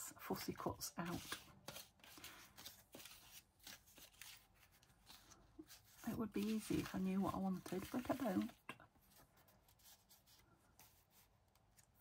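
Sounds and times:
paper cut-outs rustling: 0:01.0 - 0:12.0.

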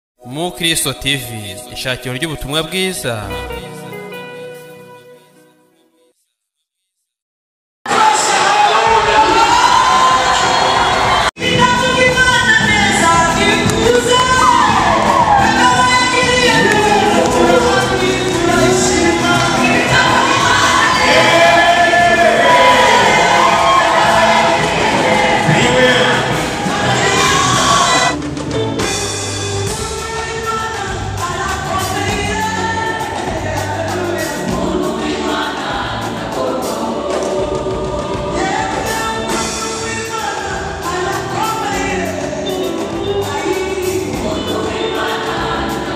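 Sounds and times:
gospel choir singing in harmony: 0:07.9 - 0:28.2, 0:28.8 - 0:45.9
drum beats: 0:07.9 - 0:45.9.

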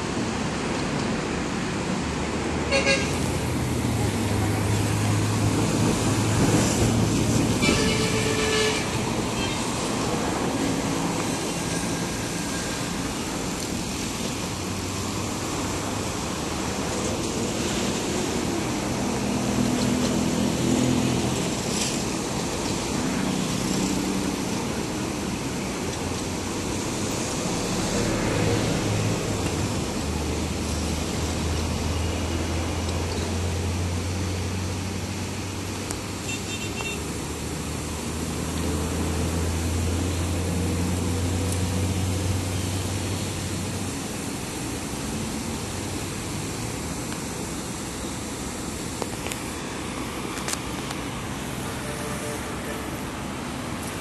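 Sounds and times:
city traffic noise: 0:00.0 - 0:54.0
distant diesel locomotives humming: 0:02.7 - 0:54.0.

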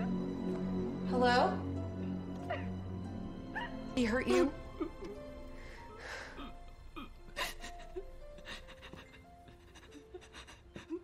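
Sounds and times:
low music drone: 0:00.0 - 0:11.0
woman whimpering cries: 0:06.3 - 0:11.0.

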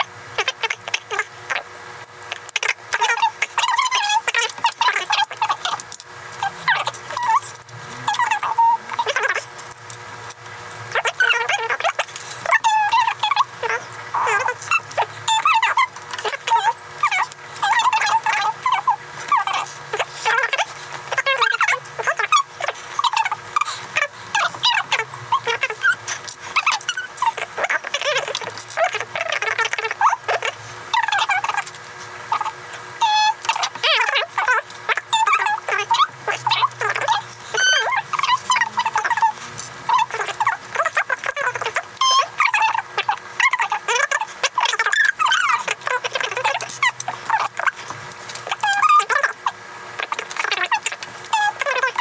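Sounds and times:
sped-up high-pitched chattering: 0:00.0 - 0:09.8, 0:10.9 - 0:52.0.

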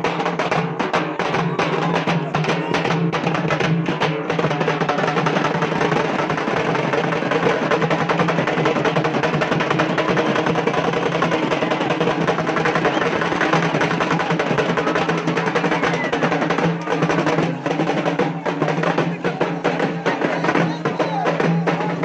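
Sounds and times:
drums beating fast: 0:00.0 - 0:22.0.

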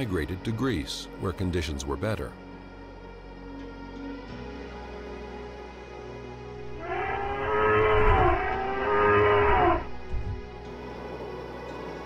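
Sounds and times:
low rumble: 0:06.6 - 0:10.7
elephant-like bellow: 0:06.7 - 0:10.1.

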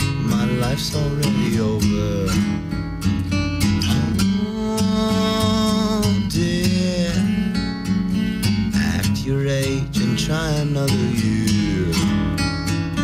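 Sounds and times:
man singing: 0:00.0 - 0:02.9, 0:03.6 - 0:12.6
acoustic guitar strummed: 0:00.0 - 0:13.0.

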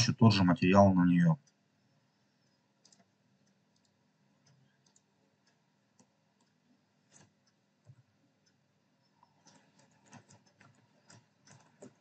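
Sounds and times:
faint computer mouse clicks: 0:02.4 - 0:12.0.

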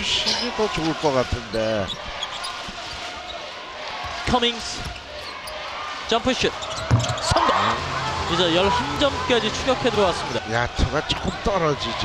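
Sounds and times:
arena crowd noise: 0:00.0 - 0:12.0
basketball dribbled on hardwood: 0:06.8 - 0:07.2.

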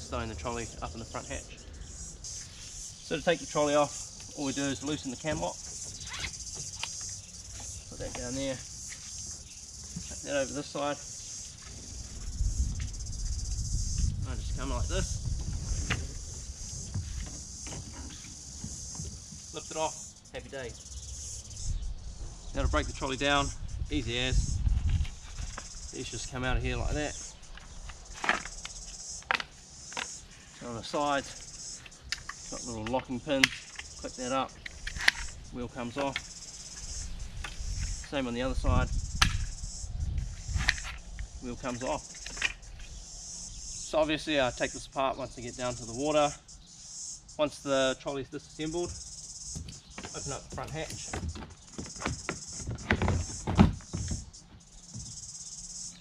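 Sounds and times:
insects chirping: 0:00.0 - 0:56.0
handling noise: 0:48.8 - 0:55.2.

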